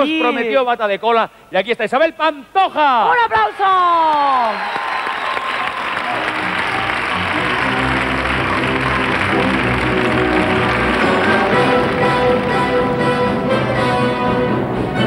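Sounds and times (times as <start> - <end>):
audience applauding: 3.8 - 13.3.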